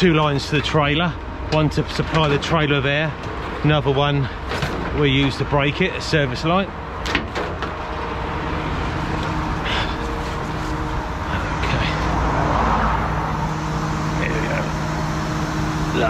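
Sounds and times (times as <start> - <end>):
diesel engine idling: 0.0 - 16.0
vehicle passing: 7.7 - 16.0.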